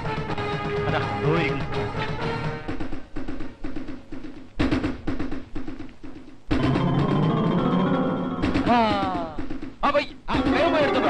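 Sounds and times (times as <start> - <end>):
quick drum beats: 0.0 - 11.0.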